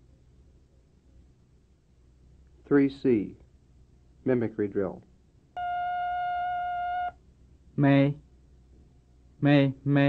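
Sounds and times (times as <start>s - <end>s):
electronic beep: 5.6s - 7.2s.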